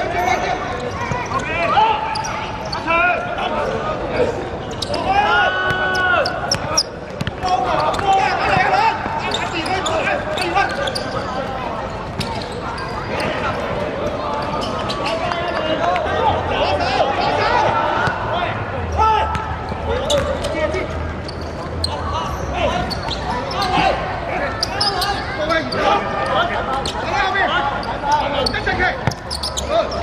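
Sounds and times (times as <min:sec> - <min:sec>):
people shouting: 0:05.0 - 0:06.4.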